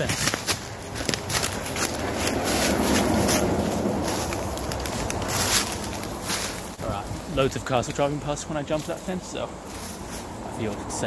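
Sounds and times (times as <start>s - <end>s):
clothing and backpack rustling: 0.0s - 7.5s, 8.7s - 10.7s
footfalls on leaf litter: 0.0s - 8.1s.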